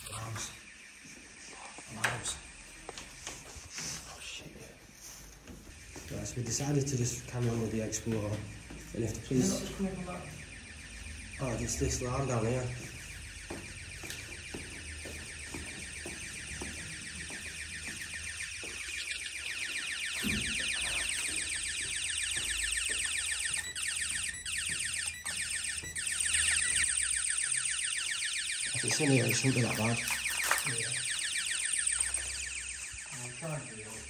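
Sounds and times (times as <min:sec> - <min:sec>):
intruder alarm pulsing tone: 0:00.0 - 0:34.0.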